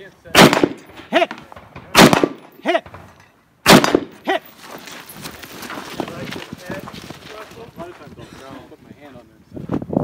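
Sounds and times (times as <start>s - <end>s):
rifle shot echo: 0.3s - 4.2s
footsteps and gear rattling on dirt: 4.1s - 10.0s.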